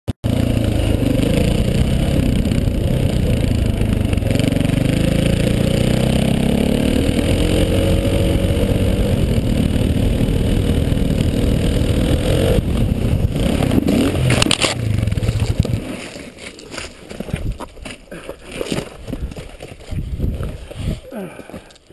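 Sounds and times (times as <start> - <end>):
motorcycle engine revving: 0.2 - 16.2.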